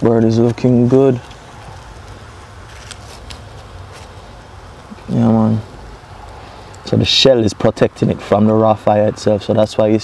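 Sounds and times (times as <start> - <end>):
wood fire hissing: 0.0 - 9.3
fire crackles: 0.0 - 10.0.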